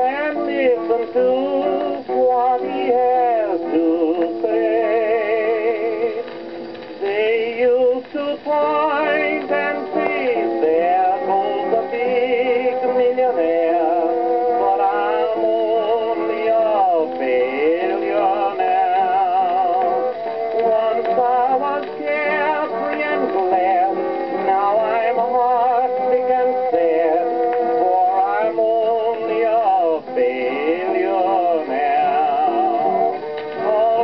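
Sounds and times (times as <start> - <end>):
country song on gramophone: 0.0 - 34.0.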